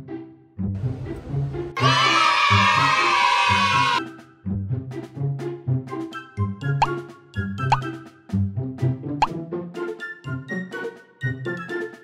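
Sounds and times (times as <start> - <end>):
playful plucked background music: 0.0 - 12.0.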